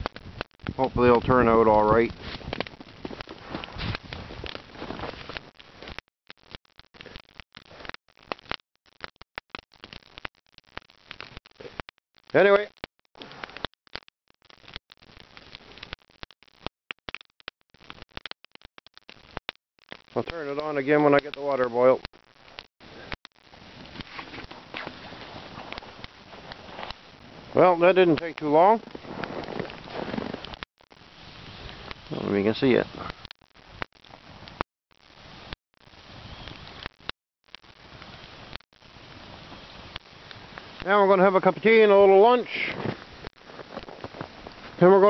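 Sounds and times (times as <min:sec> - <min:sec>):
steady fire hiss: 0:00.0 - 0:06.0, 0:07.0 - 0:08.0, 0:09.8 - 0:13.7, 0:20.1 - 0:45.0
steady rustling noise: 0:00.0 - 0:08.3, 0:22.2 - 0:36.9, 0:42.4 - 0:45.0
campfire crackling and popping: 0:00.0 - 0:45.0.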